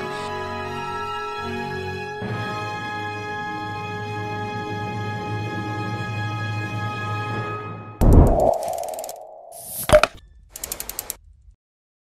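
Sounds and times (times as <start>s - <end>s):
loud hit with whoosh: 8.0s - 9.6s
held tone: 8.0s - 10.2s
sharp impact: 8.0s - 10.2s
quick run of clicks: 8.0s - 11.2s.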